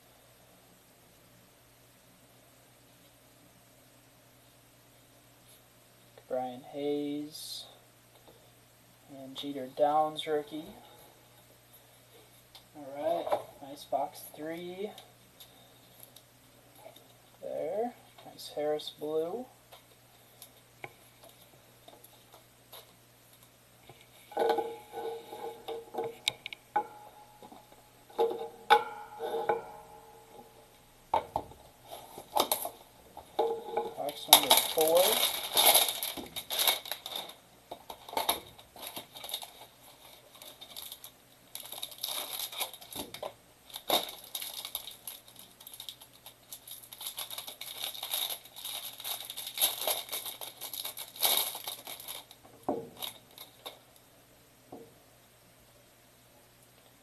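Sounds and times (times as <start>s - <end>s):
packaging crinkling: 30.3s - 53.8s.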